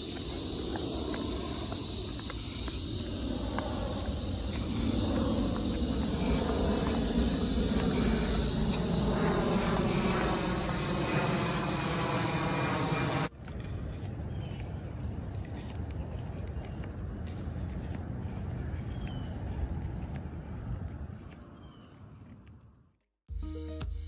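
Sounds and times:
engine drone: 0:00.0 - 0:23.0.

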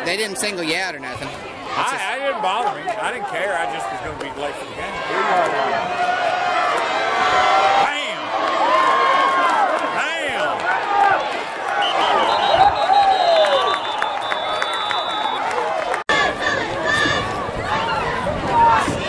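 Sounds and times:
crowd shouting and cheering: 0:00.0 - 0:19.0.

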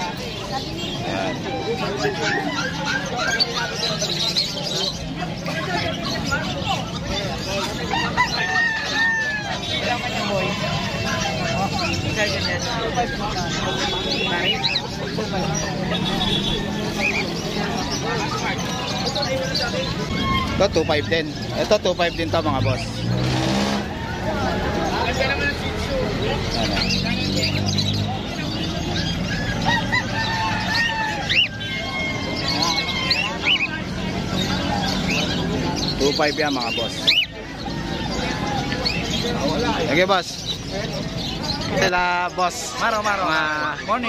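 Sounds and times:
caged birds chirping: 0:00.0 - 0:44.0
rooster crowing: 0:07.9 - 0:09.7, 0:29.6 - 0:33.6
long drawn-out bird call: 0:27.8 - 0:35.9.

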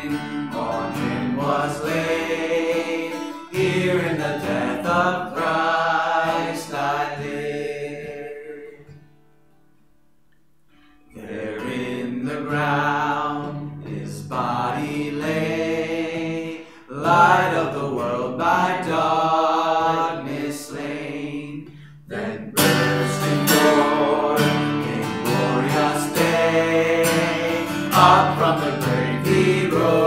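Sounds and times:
man singing a hymn: 0:00.0 - 0:09.0, 0:11.1 - 0:30.0
strummed acoustic guitar: 0:00.0 - 0:30.0.

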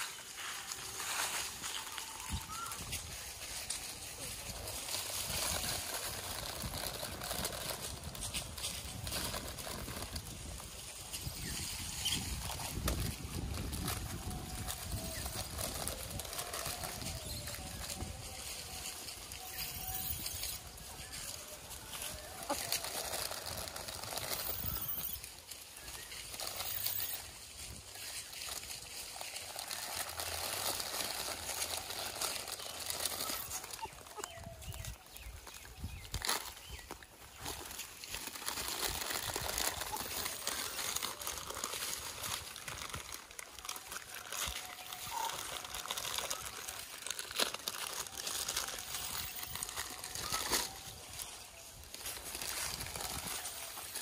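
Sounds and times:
plastic packet crinkling: 0:00.0 - 0:54.0.

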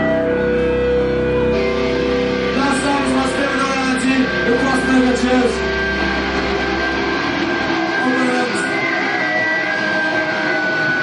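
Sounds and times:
low drone: 0:00.0 - 0:09.2
rock band ringing chord: 0:00.0 - 0:11.0.

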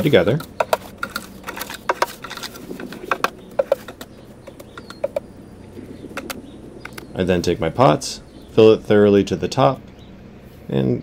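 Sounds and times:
hoe scraping potting mix: 0:00.0 - 0:11.0.

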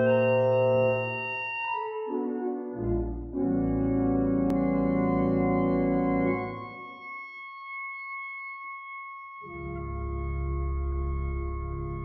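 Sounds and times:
church organ high note: 0:00.0 - 0:07.1.

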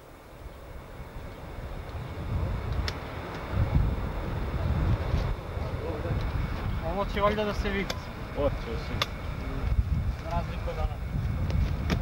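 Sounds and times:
wind buffeting microphone: 0:00.0 - 0:12.0
faint clicks: 0:02.7 - 0:03.5.

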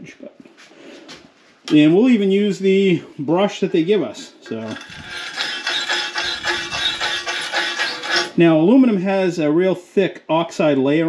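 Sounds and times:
wire brush scrubbing metal: 0:03.7 - 0:08.5.

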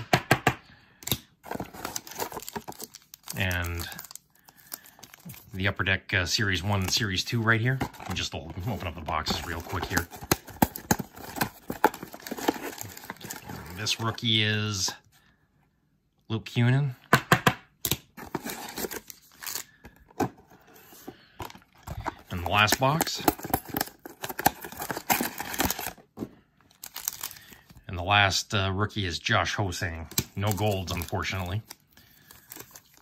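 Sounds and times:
card packs crinkling: 0:01.0 - 0:15.0, 0:17.9 - 0:27.9, 0:29.6 - 0:33.0
cardboard box tearing open: 0:09.4 - 0:13.8, 0:23.3 - 0:26.0.

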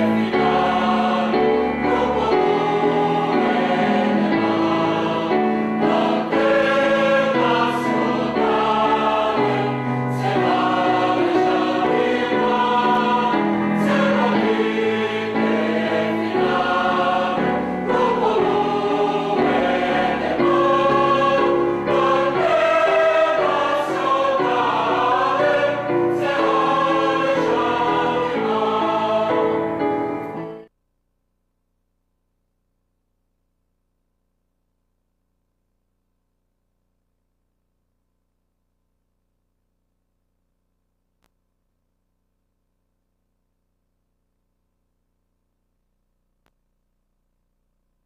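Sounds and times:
mixed choir singing: 0:00.0 - 0:30.7.

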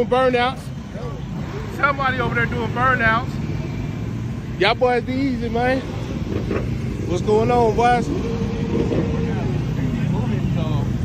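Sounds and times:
motorcycle engines rumbling: 0:00.0 - 0:11.0.

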